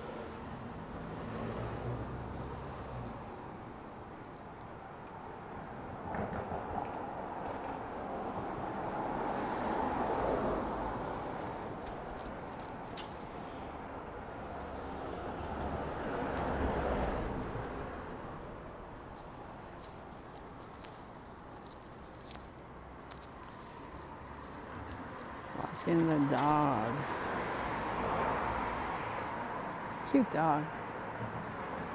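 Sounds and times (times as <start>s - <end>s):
street traffic passing: 0.0s - 31.9s.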